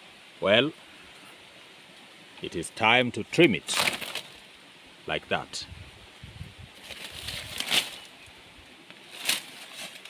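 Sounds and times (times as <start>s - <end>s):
leafy vines rustling: 0.4s - 10.0s
sharp crackle of vine: 3.5s - 4.6s, 6.8s - 10.0s.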